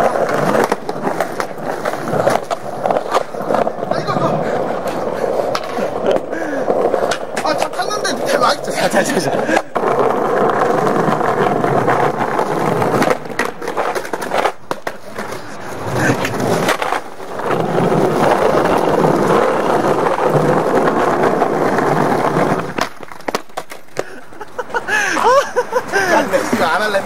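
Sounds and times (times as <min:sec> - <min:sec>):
skateboard clacking on ground: 0:00.0 - 0:27.0
skateboard wheels rolling on tiles: 0:00.0 - 0:27.0.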